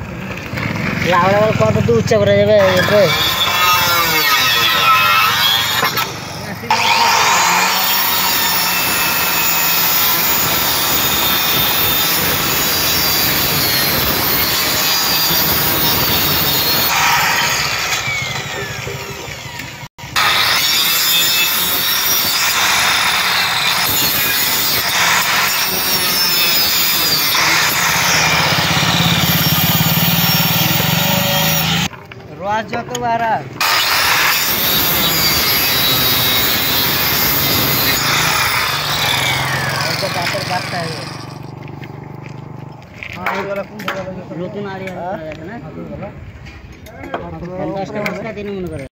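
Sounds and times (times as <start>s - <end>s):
electric circular cutter cutting bamboo: 0.4s - 32.0s, 33.6s - 44.0s.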